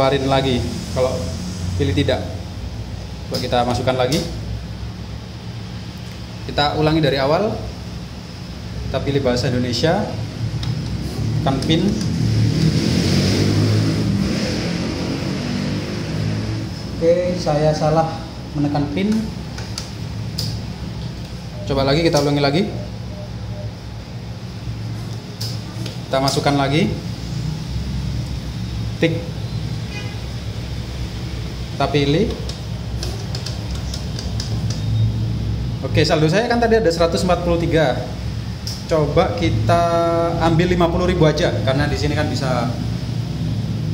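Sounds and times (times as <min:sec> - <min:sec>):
low mechanical rumble with hiss: 0:00.0 - 0:43.9
steady low hum: 0:00.0 - 0:43.9.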